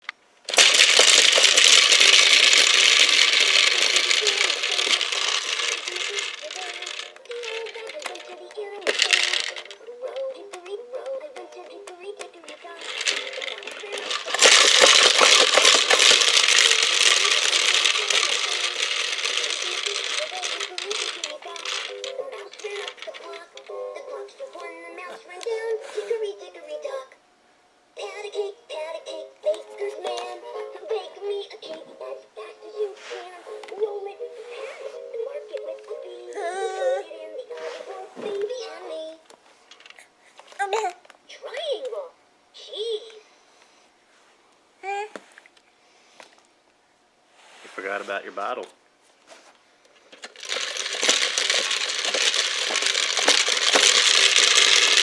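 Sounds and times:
balls rattling in spinning top: 0:00.5 - 0:10.4, 0:12.2 - 0:24.8, 0:50.1 - 0:55.0
toy spinning top pumped by hand: 0:00.5 - 0:10.7, 0:11.6 - 0:24.7, 0:50.1 - 0:55.0.

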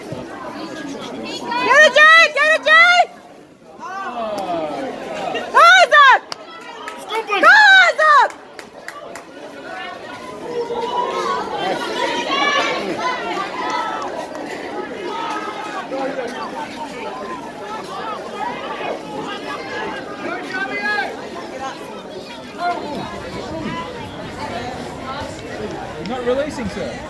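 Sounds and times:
people calling and shouting: 0:00.0 - 0:27.0.

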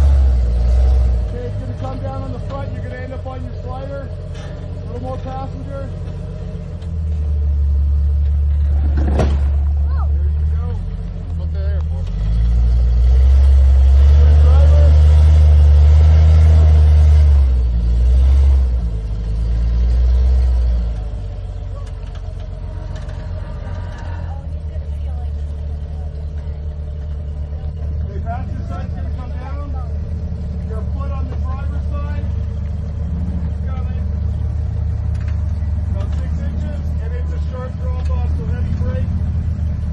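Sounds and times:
off-road vehicle engine revving: 0:00.0 - 0:39.9.

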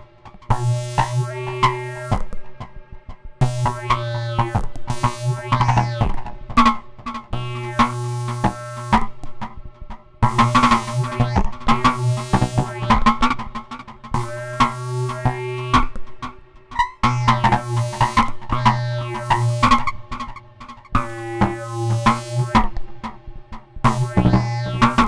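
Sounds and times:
fast synth notes and clicks: 0:03.4 - 0:06.3, 0:10.2 - 0:16.0, 0:17.0 - 0:23.2, 0:23.8 - 0:25.0
low synth drone: 0:10.2 - 0:15.8, 0:17.0 - 0:25.0.

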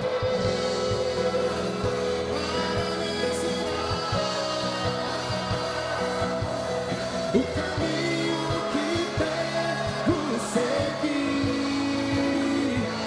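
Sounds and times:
person singing long held notes: 0:00.0 - 0:13.0
sustained instrumental chords: 0:00.0 - 0:13.0.

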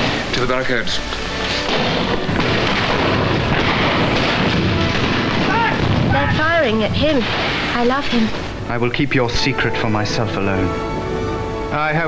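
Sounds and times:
music: 0:00.0 - 0:12.0
gunshots: 0:01.5 - 0:08.6
booms: 0:01.6 - 0:08.7.

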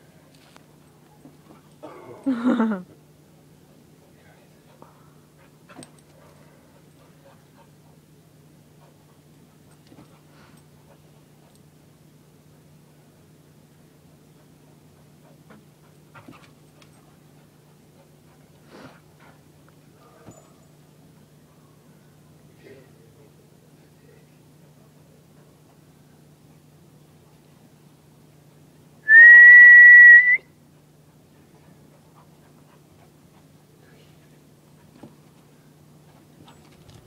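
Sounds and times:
person whistling a note: 0:29.1 - 0:30.5.

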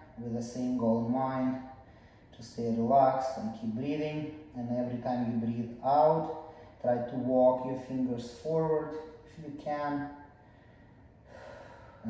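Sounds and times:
person breathing in: 0:10.4 - 0:12.0.

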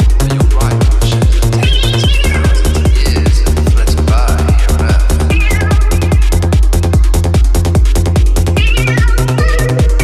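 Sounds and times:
psytrance kick drum and bassline: 0:00.0 - 0:10.0.

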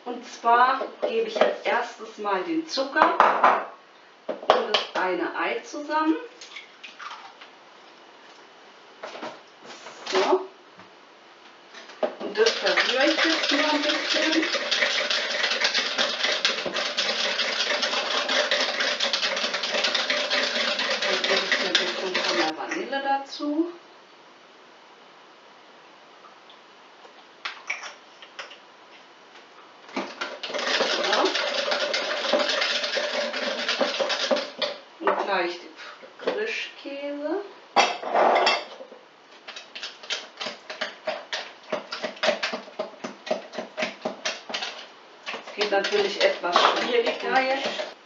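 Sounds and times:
whisk scraping in jug: 0:12.3 - 0:22.6, 0:30.0 - 0:34.8, 0:39.5 - 0:48.0.

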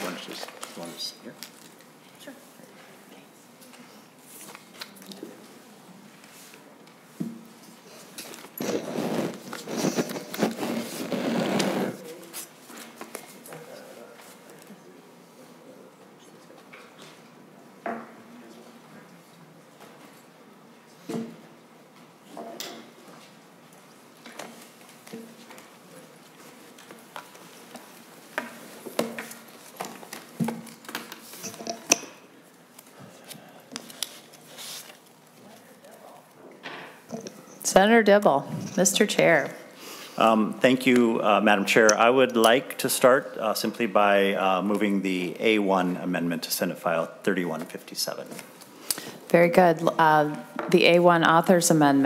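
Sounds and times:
rustling and clicking handling noise: 0:24.2 - 0:36.4.

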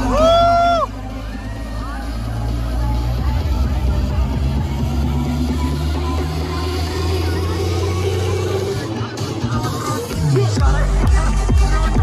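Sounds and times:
deep bass tone: 0:00.0 - 0:08.7
crowd shouting and cheering: 0:00.0 - 0:12.0
electronic dance music: 0:00.0 - 0:12.0.

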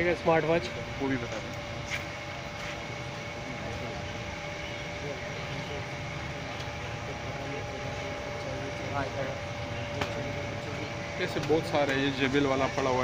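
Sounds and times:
faint voices talking: 0:00.0 - 0:13.0
machine hum with held tones: 0:00.0 - 0:13.0.

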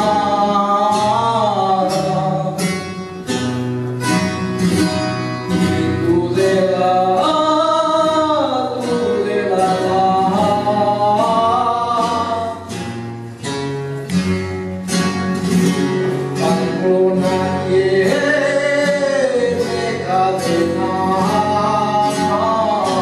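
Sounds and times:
strummed guitar: 0:00.0 - 0:23.0.

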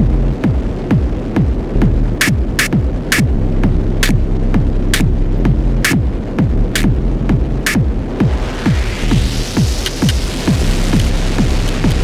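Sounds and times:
kick drum: 0:00.0 - 0:12.0
low bass drone: 0:00.0 - 0:12.0
noisy snare or clap: 0:02.2 - 0:03.3, 0:05.8 - 0:06.0, 0:06.8 - 0:07.0, 0:07.6 - 0:07.8, 0:09.6 - 0:10.3, 0:10.9 - 0:12.0.

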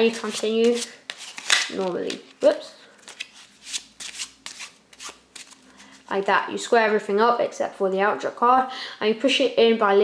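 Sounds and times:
playing cards shuffling: 0:00.1 - 0:02.3, 0:03.0 - 0:06.0.

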